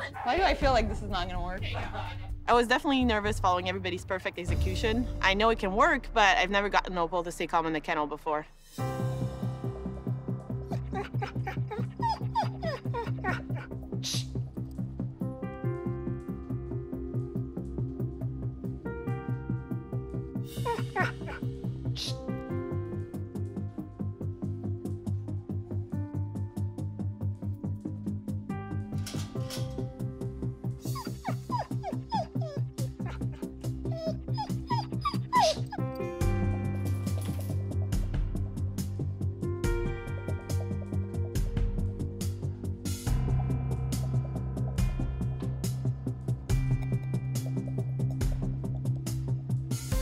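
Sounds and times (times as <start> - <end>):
background music with steady beat: 0.0 - 7.6, 8.4 - 50.0
dog whining: 10.6 - 14.3, 20.6 - 22.2, 30.8 - 36.0.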